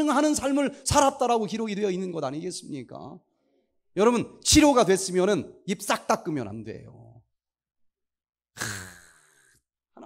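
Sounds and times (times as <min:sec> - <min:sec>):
man sighing haa: 0:08.6 - 0:09.5.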